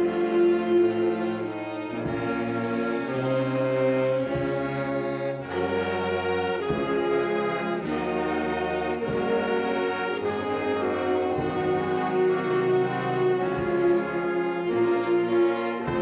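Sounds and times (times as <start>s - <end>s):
wind band playing slow hymn: 0.0s - 16.0s.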